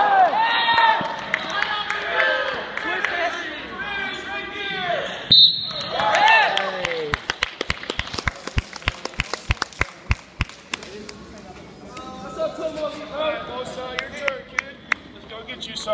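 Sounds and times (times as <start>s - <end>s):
referee's whistle blast: 5.3s - 6.0s.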